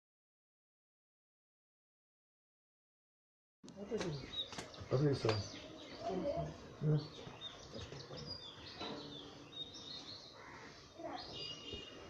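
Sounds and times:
faint outdoor background noise: 3.6s - 12.0s
small birds chirping: 3.6s - 12.0s.

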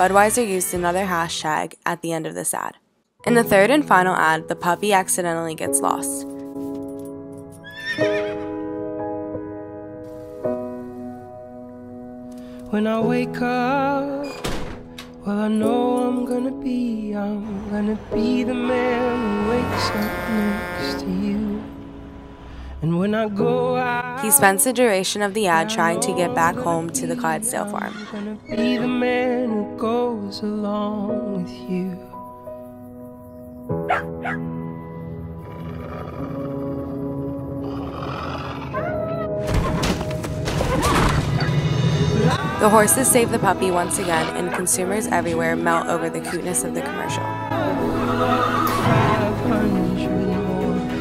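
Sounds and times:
soft instrumental music: 3.2s - 40.7s, 41.6s - 51.0s
horse whinnying: 7.6s - 8.6s, 18.8s - 21.2s, 27.8s - 28.5s, 35.4s - 37.0s, 37.6s - 39.4s, 47.2s - 49.2s
puppy yelping: 33.9s - 34.4s.

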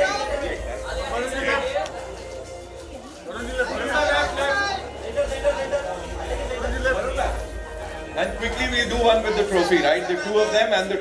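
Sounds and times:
people chattering and calling out: 0.0s - 11.0s.

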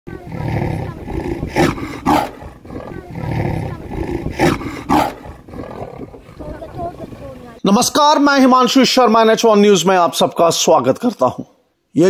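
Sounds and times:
leopard growling: 0.1s - 7.6s
leopard snarling: 0.1s - 7.6s.

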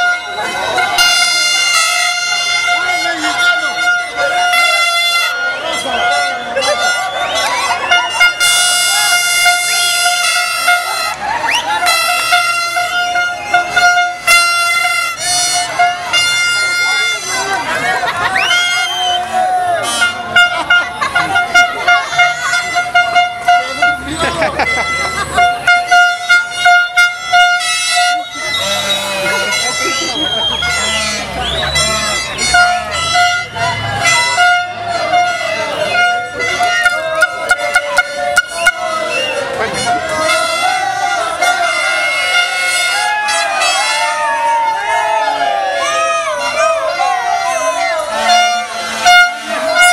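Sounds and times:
crowd shouting: 0.0s - 49.9s
horn blasts: 0.0s - 49.9s
plastic toy trumpets blowing: 0.0s - 49.9s.

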